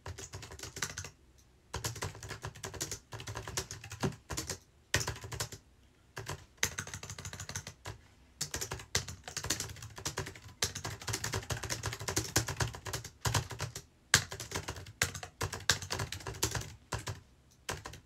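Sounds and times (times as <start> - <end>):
fast typing on keyboard: 0.0 - 1.1, 1.7 - 5.6, 6.2 - 18.0.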